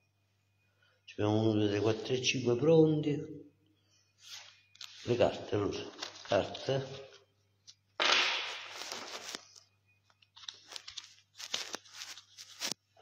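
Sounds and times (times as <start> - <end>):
cards snapping on table: 8.0 - 9.1
cards shuffling rasp: 8.0 - 9.4, 10.4 - 12.8.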